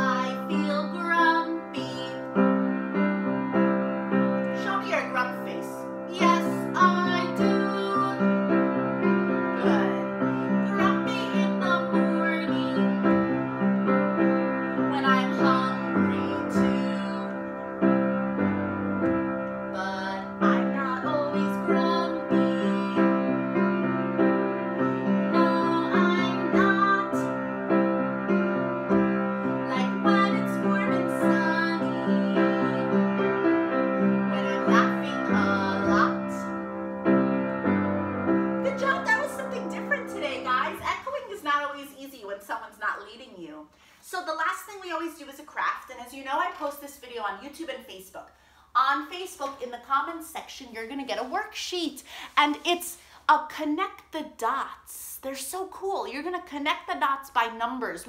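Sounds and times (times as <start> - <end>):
woman singing a children's song: 0.0 - 2.4, 4.6 - 8.3, 9.5 - 13.3, 14.8 - 17.6, 19.7 - 23.4, 25.3 - 27.3, 29.6 - 33.2, 34.3 - 36.6, 38.6 - 48.2, 48.8 - 58.0
piano chords: 0.0 - 41.8.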